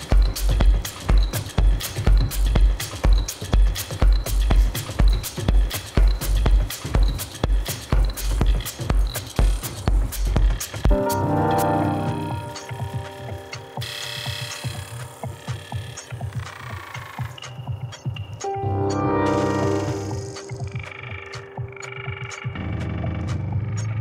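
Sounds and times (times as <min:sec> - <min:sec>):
kick drum beat: 0:00.0 - 0:24.0
light ticking rhythm: 0:00.0 - 0:24.0
sustained synth chords: 0:10.9 - 0:23.8.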